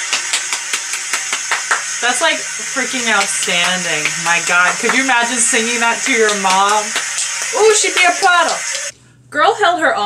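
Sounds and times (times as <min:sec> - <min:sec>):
person clapping hands rapidly: 0:00.0 - 0:08.9.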